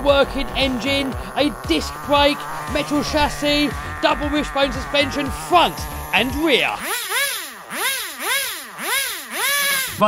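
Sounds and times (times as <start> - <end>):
small engine revving: 0.0 - 10.0.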